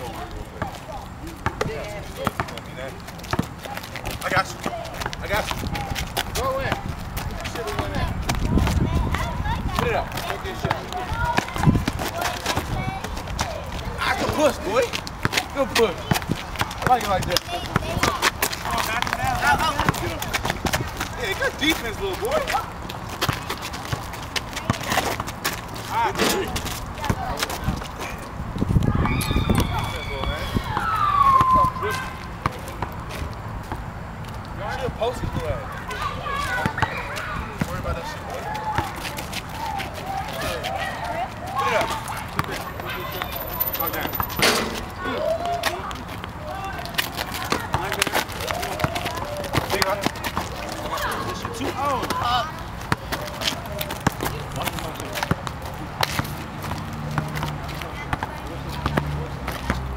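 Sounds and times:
players' voices and shouts: 0:00.0 - 0:33.4, 0:34.5 - 0:59.9
basketball bouncing on asphalt: 0:00.1 - 0:27.9, 0:28.6 - 0:34.4, 0:41.7 - 0:45.0, 0:45.7 - 0:59.9
indistinct voices: 0:38.2 - 0:59.9
ball knocks on asphalt court: 0:44.2 - 0:44.9.

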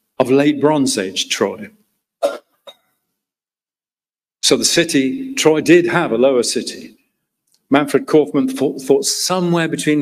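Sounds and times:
lecture speech: 0:00.2 - 0:01.9, 0:04.4 - 0:10.0
person coughing: 0:02.2 - 0:03.0.

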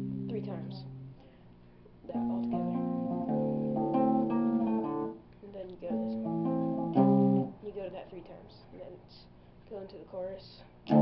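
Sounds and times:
electric guitar chord riff: 0:00.0 - 0:01.2, 0:02.1 - 0:05.2, 0:05.8 - 0:07.6.

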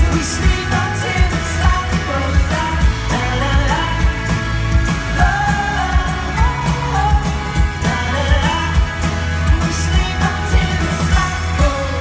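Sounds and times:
person singing: 0:00.0 - 0:04.4, 0:05.0 - 0:12.0
electric and acoustic guitars: 0:00.0 - 0:12.0
keyboards: 0:00.0 - 0:12.0
steady drum beat: 0:00.0 - 0:12.0.

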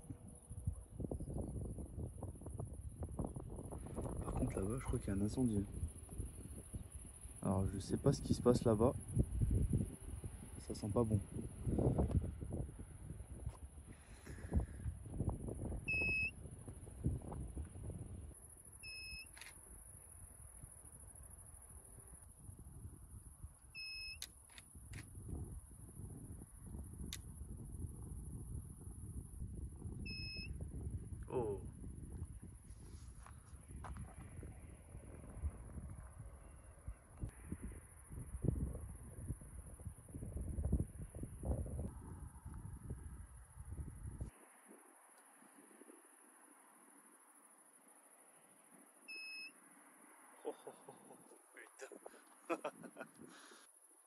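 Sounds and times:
wind rumbling on microphone: 0:00.0 - 0:23.8, 0:24.6 - 0:46.2
crickets chirping: 0:00.0 - 0:54.0
short electronic beep: 0:15.9 - 0:16.4, 0:30.1 - 0:30.5, 0:49.1 - 0:49.6.

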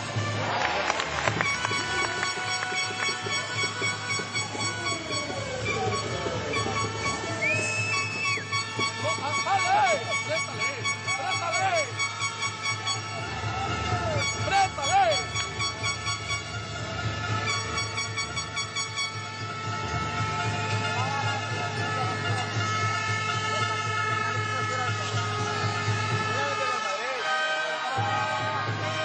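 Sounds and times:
arena music: 0:00.0 - 0:29.0
crowd noise: 0:00.0 - 0:29.0
held horn tones: 0:00.0 - 0:29.0
high whistle tone: 0:01.3 - 0:16.7.

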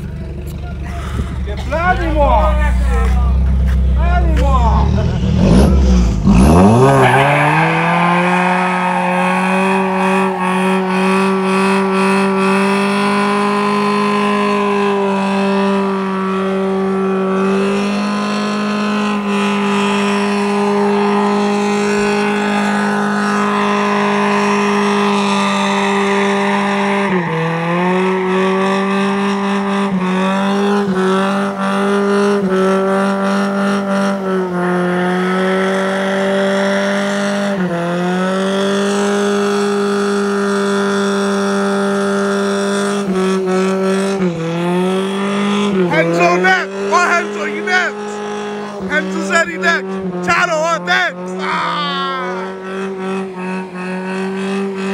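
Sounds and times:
truck engine revving: 0:00.0 - 0:54.9.

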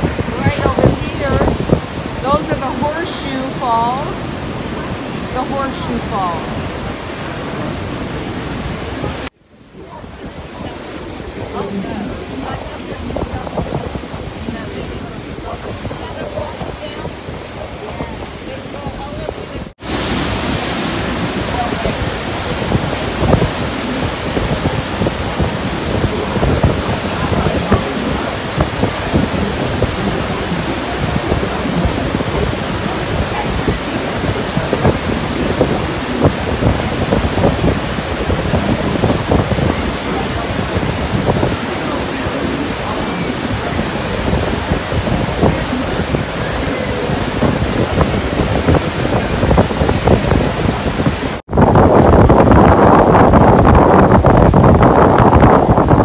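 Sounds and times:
river churning: 0:00.0 - 0:56.0
waterfall roar: 0:00.0 - 0:56.0
wind on microphone: 0:00.0 - 0:56.0.

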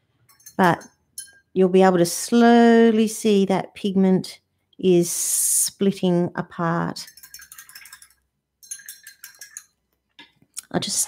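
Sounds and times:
paintbrush clinking on jar: 0:00.2 - 0:01.5, 0:07.0 - 0:09.8.

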